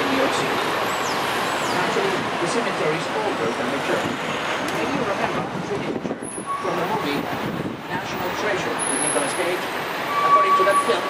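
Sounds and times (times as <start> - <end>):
tour guide talking: 0.0 - 1.0, 1.6 - 11.0
bus moving through traffic: 0.0 - 11.0.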